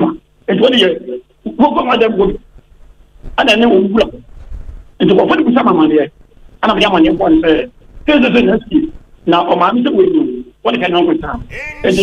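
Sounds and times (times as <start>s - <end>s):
person talking in quick phrases: 11.4s - 12.0s.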